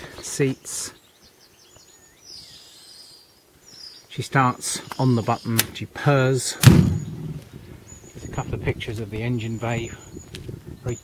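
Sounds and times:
faint birdsong: 0:00.0 - 0:11.0.

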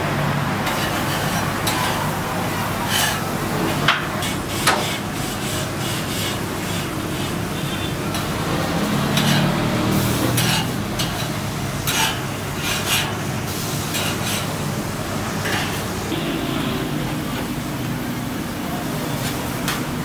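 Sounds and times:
metal spatula scraping grill: 0:00.6 - 0:14.6, 0:15.4 - 0:16.0
meat sizzling on a grill: 0:00.6 - 0:16.1.

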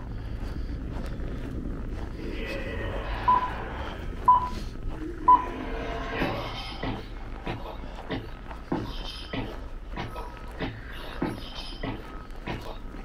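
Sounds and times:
street noise: 0:00.0 - 0:13.0
short electronic beeps: 0:03.3 - 0:03.6, 0:04.3 - 0:04.6.

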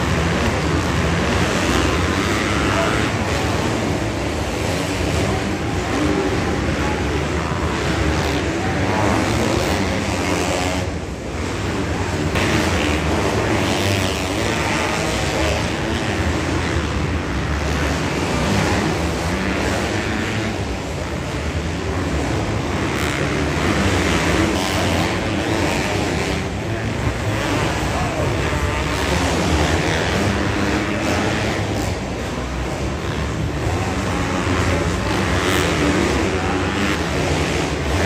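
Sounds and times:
motocross engines revving: 0:00.0 - 0:38.0.

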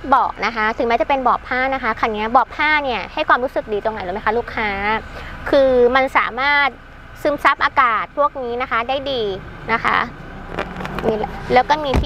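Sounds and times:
woman speaking: 0:00.0 - 0:10.2, 0:11.0 - 0:12.0.

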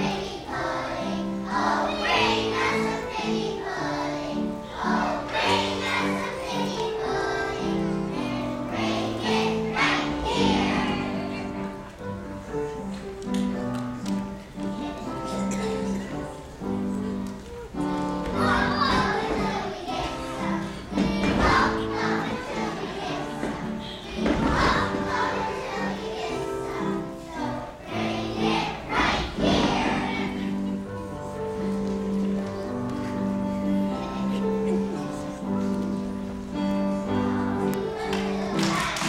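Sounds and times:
children's choir singing: 0:00.0 - 0:39.0.

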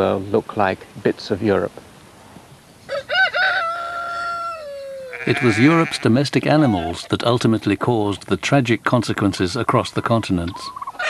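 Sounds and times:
rooster crowing: 0:02.9 - 0:05.9.

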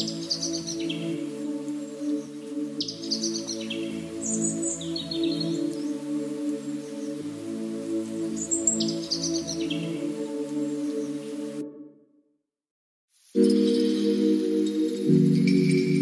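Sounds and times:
calm ambient music: 0:00.0 - 0:12.1, 0:13.3 - 0:16.0.

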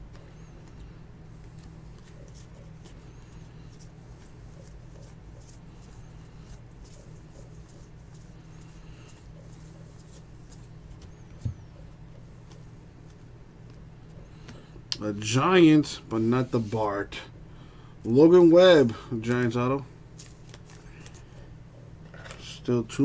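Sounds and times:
low electrical hum: 0:00.0 - 0:23.0
trading cards flipped by hand: 0:20.2 - 0:21.3.

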